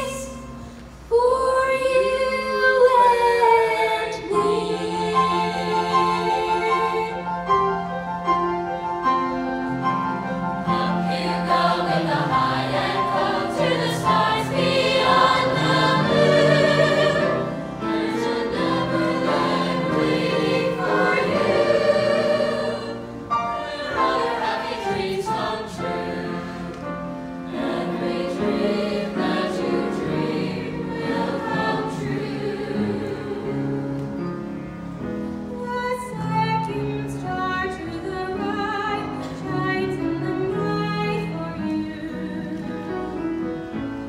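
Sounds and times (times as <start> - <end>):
piano accompaniment: 0.0 - 44.0
choir singing: 1.1 - 7.8, 10.0 - 34.4.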